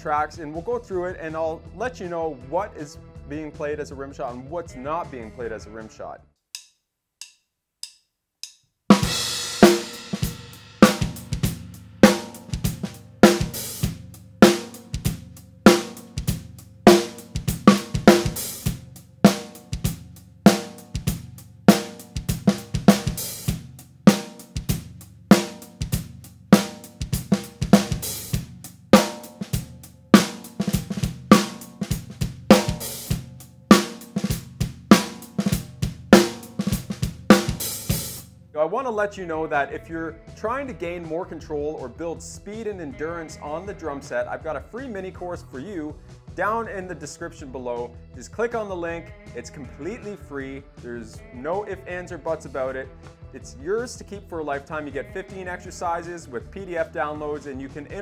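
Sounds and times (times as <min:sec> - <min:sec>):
drumstick count-in clicks: 0:06.5 - 0:08.7
drum kit groove: 0:06.6 - 0:38.4, 0:55.3 - 0:58.0.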